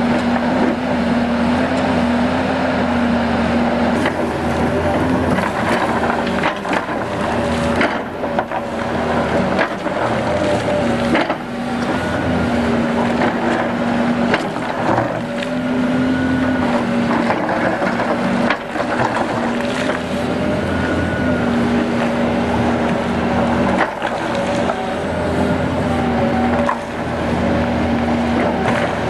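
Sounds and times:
excavator diesel engine and hydraulics: 0.0s - 29.0s
gravel crunching under bucket: 3.9s - 29.0s.

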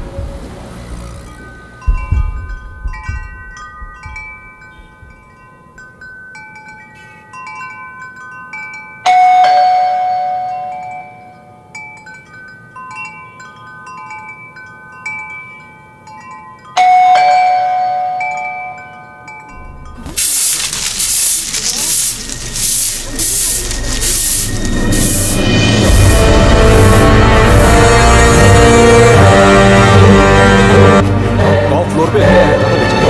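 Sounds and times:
chime-like bell tones: 1.3s - 21.0s.

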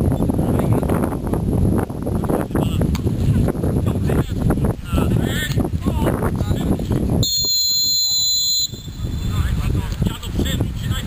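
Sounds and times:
referee's whistle blast: 7.2s - 9.1s.

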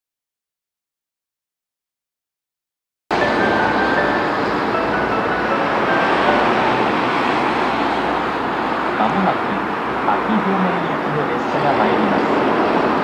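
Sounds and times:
outdoor hiss and rumble: 3.1s - 13.0s.

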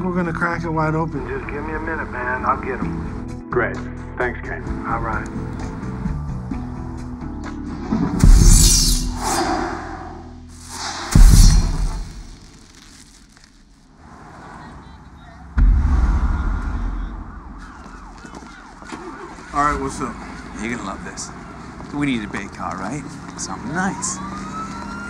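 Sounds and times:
film score: 0.0s - 14.2s, 15.5s - 24.6s
bright swish: 8.2s - 12.6s
heavy booming hits: 10.7s - 12.4s, 15.6s - 18.8s.

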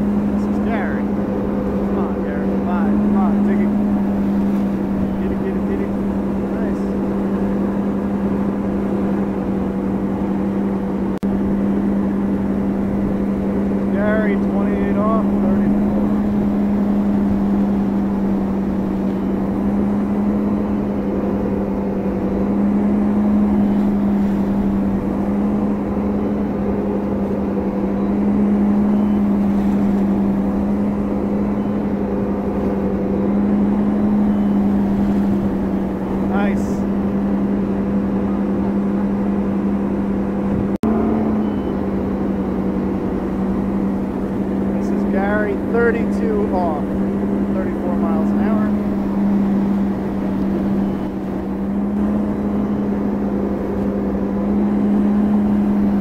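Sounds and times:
boat engine drone: 0.0s - 56.0s
water rushing from hull: 0.0s - 56.0s.

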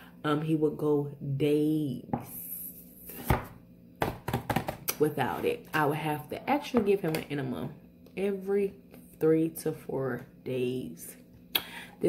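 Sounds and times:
knocking on plastic tub: 4.0s - 4.8s.

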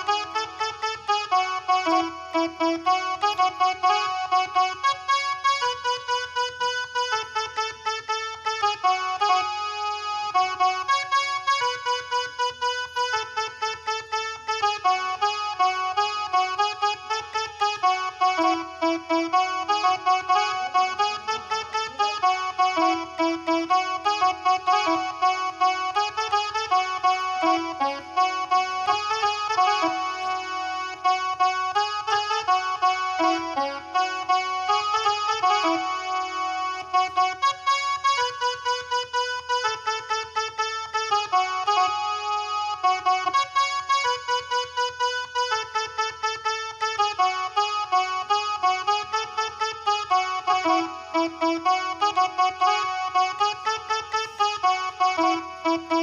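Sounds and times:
mini keyboard melody: 0.0s - 56.0s.

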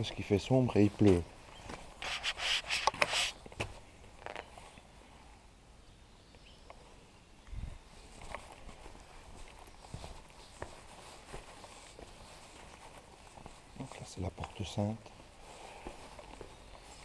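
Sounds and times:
brief rustle: 1.0s - 4.7s
footsteps on wet stone paving: 8.0s - 17.0s.

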